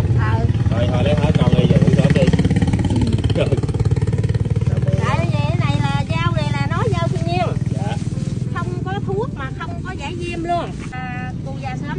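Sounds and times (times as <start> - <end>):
motorcycle engine running: 0.0 - 11.9.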